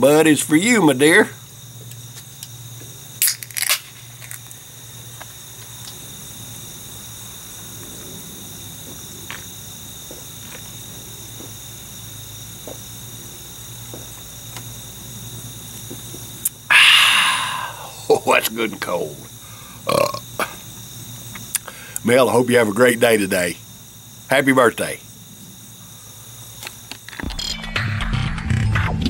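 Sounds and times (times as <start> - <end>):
steady background hum: 0.0 - 27.4.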